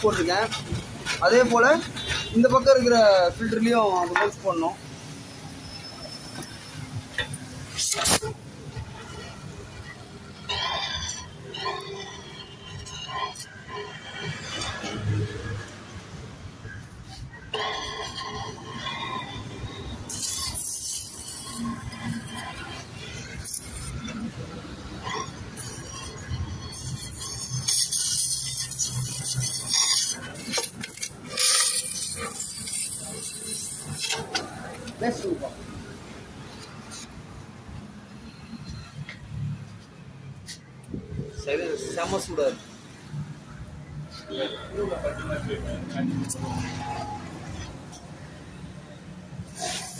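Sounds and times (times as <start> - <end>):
welding hiss: 20.1 - 22.5, 25.6 - 34.2, 49.5 - 49.9.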